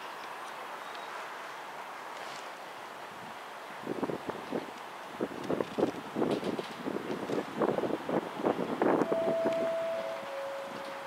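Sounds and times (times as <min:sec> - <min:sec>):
steam locomotive exhaust beats: 0:08.0 - 0:11.0
steady high note: 0:09.0 - 0:11.0.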